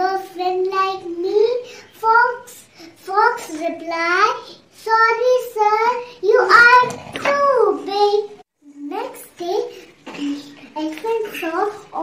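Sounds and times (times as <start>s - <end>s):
girl speaking: 0.0s - 12.0s.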